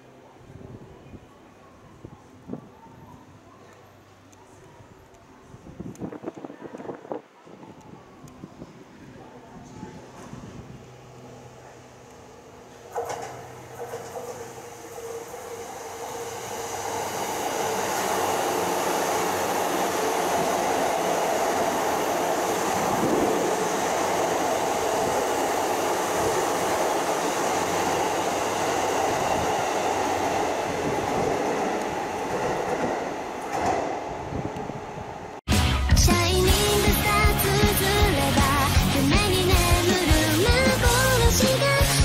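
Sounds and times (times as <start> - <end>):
electric train passing: 5.9 - 35.4.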